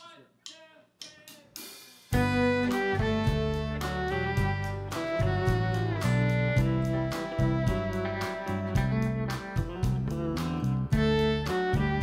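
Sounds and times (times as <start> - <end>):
count-in beats: 0.0 - 12.0
country band playing: 2.1 - 12.0.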